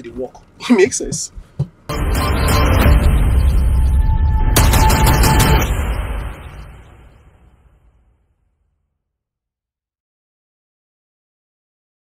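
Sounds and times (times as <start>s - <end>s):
deep bass music: 1.9s - 6.9s
rapid gunfire: 4.6s - 6.3s.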